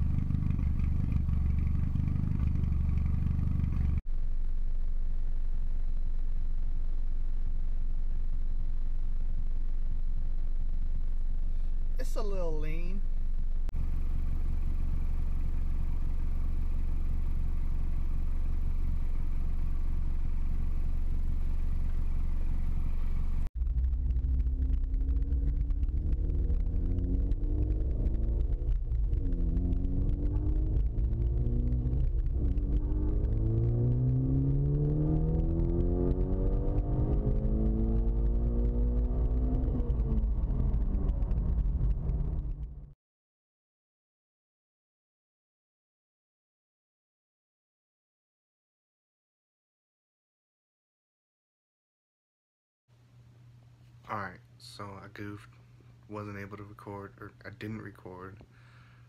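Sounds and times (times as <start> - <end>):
car engine idling: 0.0 - 36.8
car accelerating through gears: 25.2 - 42.7.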